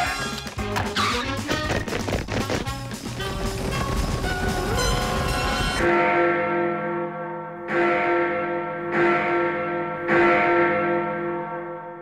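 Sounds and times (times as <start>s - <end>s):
music: 0.0s - 7.8s
large clock bell tolling: 5.0s - 12.0s.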